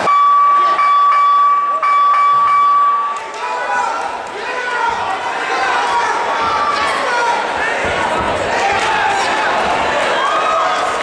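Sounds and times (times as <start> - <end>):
buzzer long high tone: 0.0 - 3.1.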